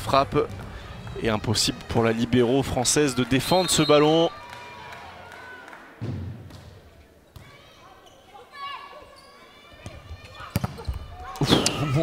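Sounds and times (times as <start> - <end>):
faint court and crowd noise: 0.0 - 12.0.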